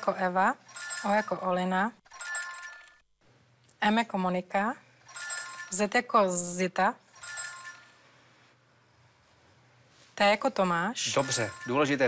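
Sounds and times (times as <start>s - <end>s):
electronic chime: 11.1s - 12.0s.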